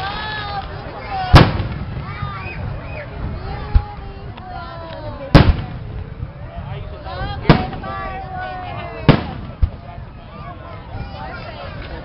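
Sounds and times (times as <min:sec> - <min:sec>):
firework shells booming: 0:01.3 - 0:02.8, 0:05.3 - 0:06.2, 0:07.4 - 0:08.2, 0:09.0 - 0:10.0.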